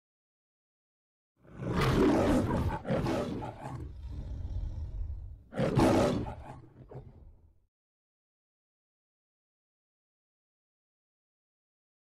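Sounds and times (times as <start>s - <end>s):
lion roaring: 1.4s - 7.5s
low rumbling growl: 3.6s - 5.5s.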